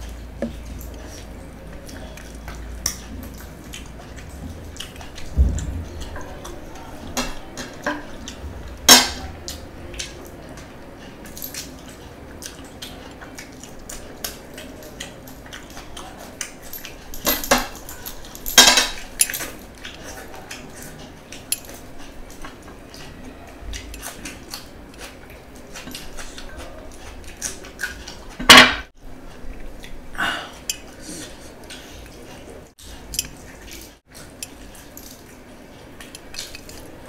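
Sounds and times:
rings clinking against plates: 16.6 - 19.6.

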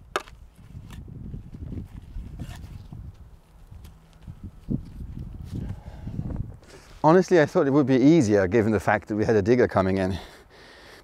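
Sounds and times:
spade digging and scraping soil: 1.8 - 3.1.

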